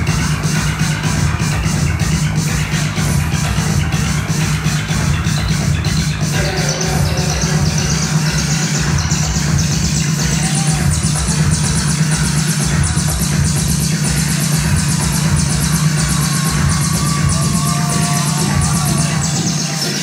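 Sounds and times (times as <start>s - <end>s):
loud electronic dance music: 0.0s - 20.0s.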